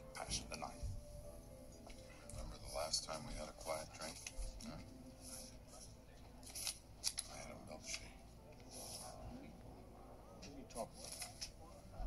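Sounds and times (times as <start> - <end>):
soft dialogue: 0.0 - 12.0
notebook pages rustling: 3.6 - 4.7, 5.3 - 9.2.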